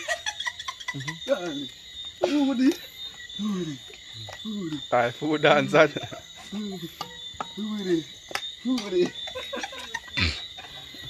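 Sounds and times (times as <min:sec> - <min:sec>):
crickets chirping: 0:00.0 - 0:11.0
people talking: 0:01.0 - 0:02.8, 0:03.4 - 0:07.0, 0:07.6 - 0:10.4.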